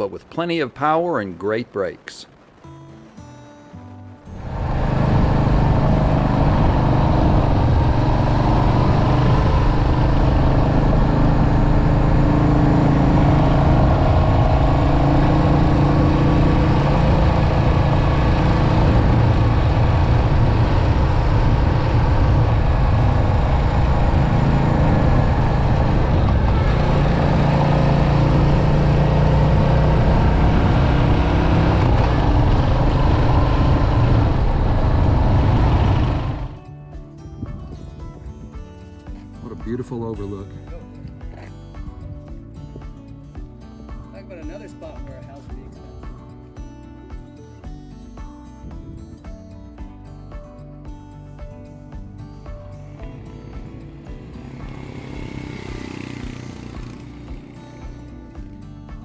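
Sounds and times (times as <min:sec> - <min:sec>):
motorcycle engine running: 0:04.4 - 0:39.2, 0:51.4 - 0:59.0.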